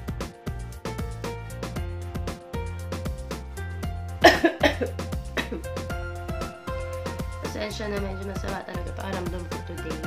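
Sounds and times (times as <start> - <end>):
background music: 0.0 - 10.0
woman coughing: 4.2 - 5.7.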